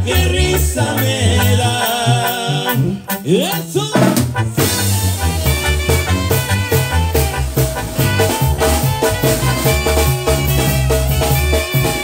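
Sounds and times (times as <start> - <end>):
bass line: 0.0 - 12.0
horn melody: 0.0 - 12.0
steady drum beat: 0.0 - 12.0.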